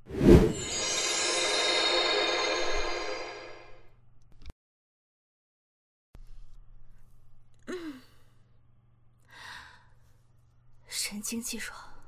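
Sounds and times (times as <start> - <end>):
woman sighing: 7.6 - 8.3.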